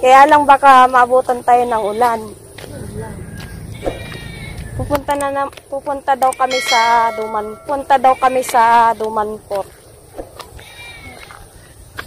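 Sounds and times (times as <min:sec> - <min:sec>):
goat bleating: 0:01.5 - 0:02.3, 0:03.7 - 0:04.7, 0:06.2 - 0:08.9, 0:10.6 - 0:11.4
wind rumbling on microphone: 0:02.3 - 0:06.2.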